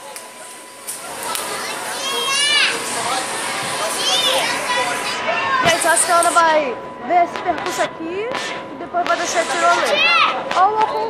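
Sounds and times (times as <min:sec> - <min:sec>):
children shouting and chattering: 0:00.0 - 0:06.8, 0:09.7 - 0:11.0.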